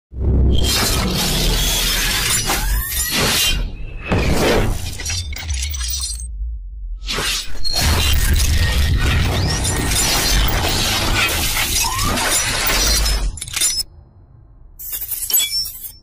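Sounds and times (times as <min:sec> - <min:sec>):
deep bass rumble: 0:04.2 - 0:07.1.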